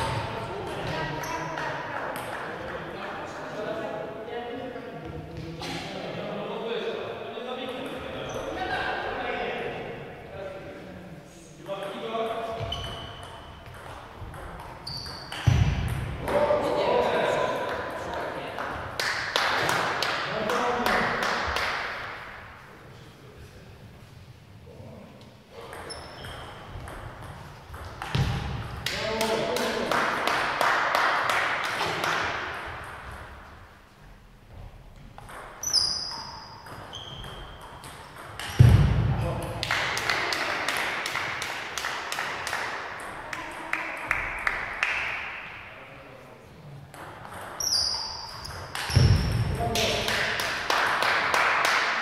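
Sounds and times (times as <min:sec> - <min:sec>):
short high squeaks: 0:12.6 - 0:13.5, 0:14.8 - 0:15.4, 0:25.8 - 0:26.7, 0:35.6 - 0:37.7, 0:47.6 - 0:49.2.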